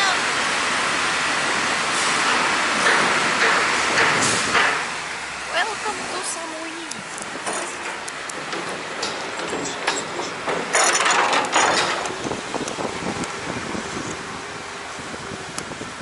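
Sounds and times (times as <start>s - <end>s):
loud rush of noise: 0.0s - 16.0s
car engine tyre and wind noise: 0.4s - 16.0s.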